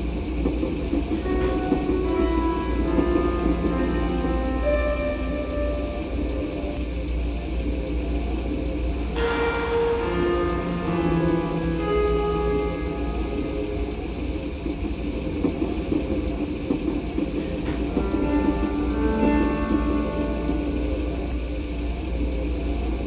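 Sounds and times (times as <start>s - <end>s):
steady low hum: 0.0s - 23.0s
bell-like keyboard music: 1.1s - 7.0s, 9.2s - 15.3s, 17.4s - 22.1s
sharp ringing hit: 9.2s - 14.6s.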